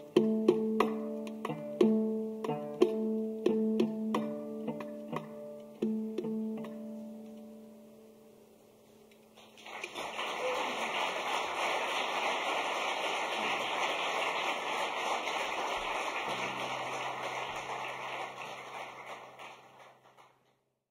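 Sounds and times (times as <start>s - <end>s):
audience applauding: 9.4s - 20.5s.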